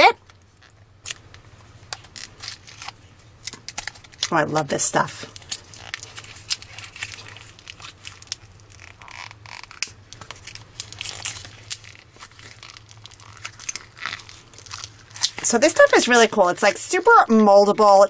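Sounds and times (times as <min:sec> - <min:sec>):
foam beads crackling when squeezed: 0:00.4 - 0:17.2.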